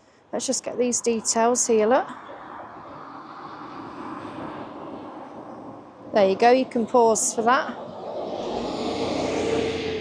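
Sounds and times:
road traffic hum: 0.0s - 10.0s.

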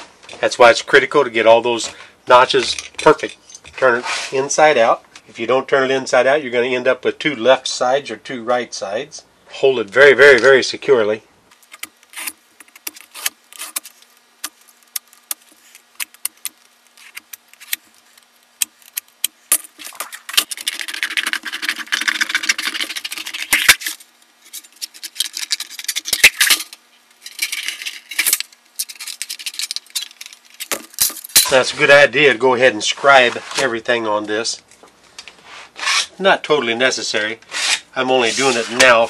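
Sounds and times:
metal scribe scratching sheet metal: 35.5s - 36.2s, 37.5s - 38.8s.

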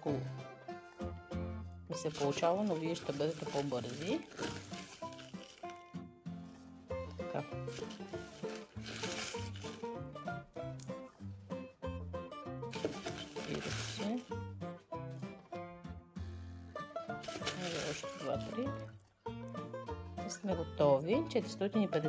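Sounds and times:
instrumental music: 0.0s - 22.0s.

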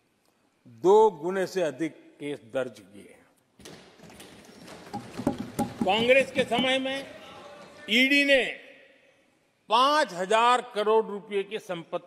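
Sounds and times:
voices in a chamber: 0.4s - 3.6s, 5.7s - 12.0s
man giving a speech: 0.6s - 3.4s, 5.6s - 12.0s
people thumping wooden desks: 3.6s - 7.1s.

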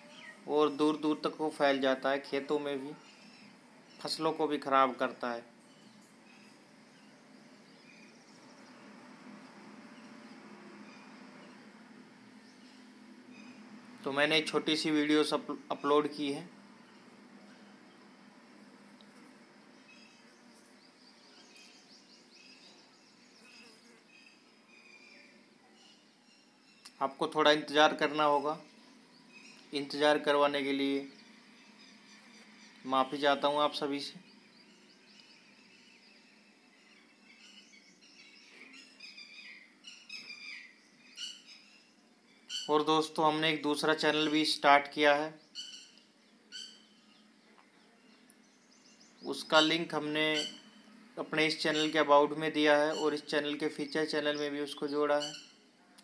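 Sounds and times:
faint bird chirps: 0.0s - 1.2s, 2.3s - 4.4s, 5.6s - 14.2s, 15.1s - 18.3s, 19.0s - 27.2s, 28.0s - 42.9s, 45.3s - 56.0s
high bird call: 49.1s - 50.9s, 51.7s - 52.1s, 55.1s - 55.7s.

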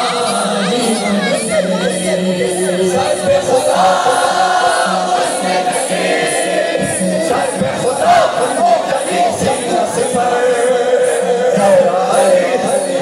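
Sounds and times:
crowd singing in unison: 0.0s - 13.0s
steady beat: 0.8s - 13.0s.

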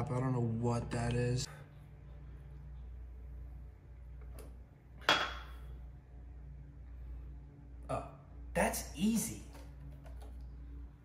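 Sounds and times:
glass set down on marble: 5.0s - 5.6s.

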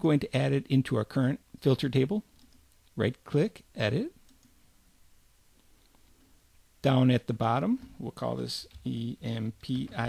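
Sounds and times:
computer mouse click: 4.2s - 4.6s.

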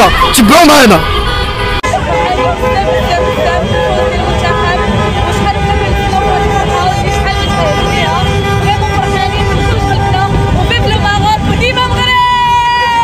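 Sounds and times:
car horns honking: 0.0s - 12.4s
crowd voices: 0.0s - 13.0s
traffic rumble: 0.0s - 13.0s.

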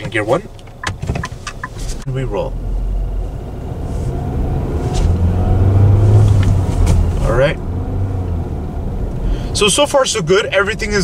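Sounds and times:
car engine low hum: 0.0s - 11.0s.

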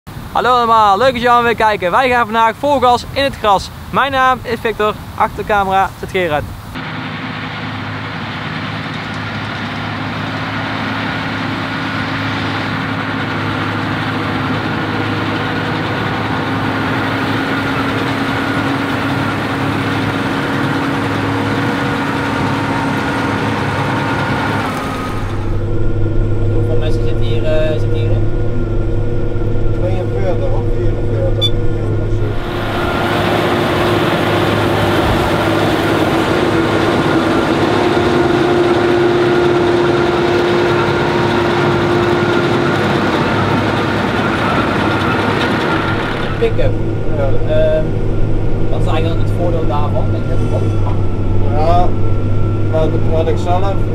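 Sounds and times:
tractor and forage wagon working: 6.8s - 53.9s.

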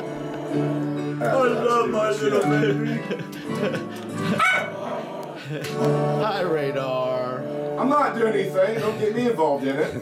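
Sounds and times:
country christmas music: 0.0s - 10.0s
small dog barking: 4.4s - 4.8s.

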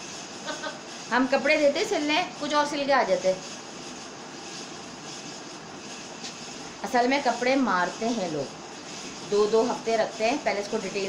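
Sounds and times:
steady hissing noise: 0.0s - 11.0s.

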